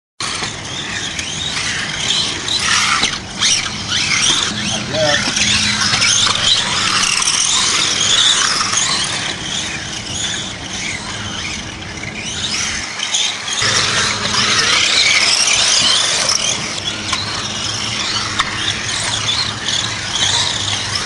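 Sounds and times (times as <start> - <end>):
toy car motors whining: 0.2 - 21.0.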